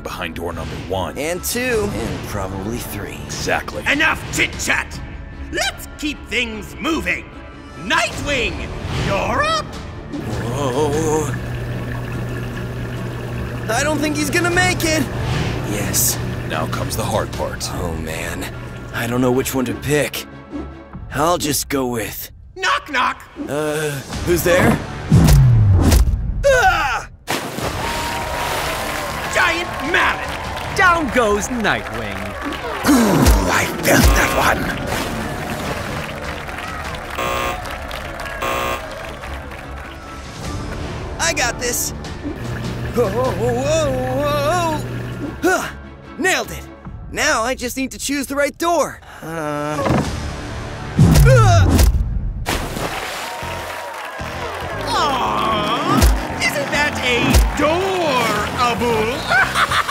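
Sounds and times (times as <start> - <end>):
background music: 0.0 - 27.1, 28.0 - 59.9
churning water: 9.1 - 20.2, 27.3 - 46.4, 52.5 - 59.9
cartoon thump with falling tone: 51.0 - 52.1
toy splashing into water: 52.5 - 53.4.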